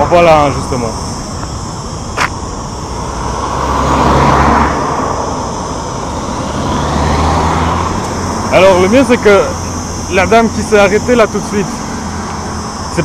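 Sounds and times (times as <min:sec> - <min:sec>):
car passing by: 0:03.0 - 0:08.4.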